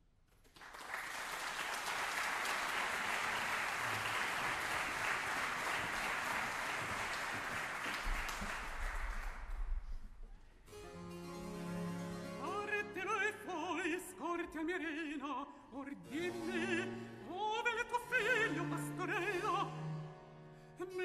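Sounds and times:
audience applauding: 0.3s - 9.9s.

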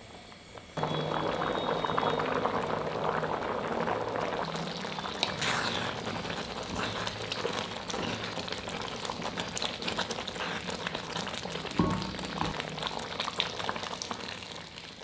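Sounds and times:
thick mixture bubbling: 0.8s - 15.0s
spoon striking pot: 11.7s - 13.0s.

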